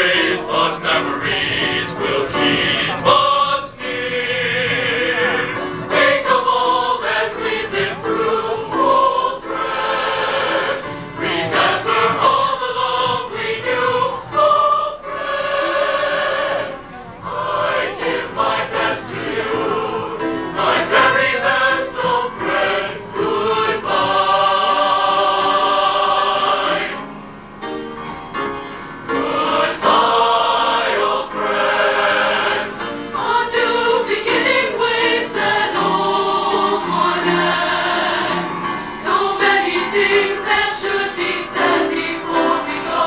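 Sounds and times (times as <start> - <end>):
choir singing in parts: 0.0 - 27.2, 29.0 - 43.0.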